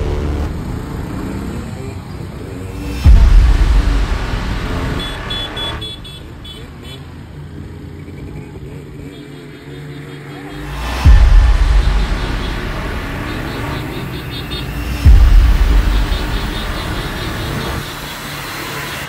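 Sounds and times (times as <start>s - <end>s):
motorcycle engines running: 0.0s - 3.1s, 6.5s - 11.2s.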